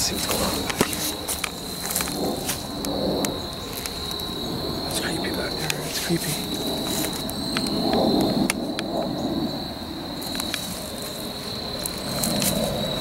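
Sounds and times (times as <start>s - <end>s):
footsteps rustling: 0.0s - 3.0s, 5.1s - 7.4s, 10.2s - 12.8s
insects trilling: 0.0s - 13.0s.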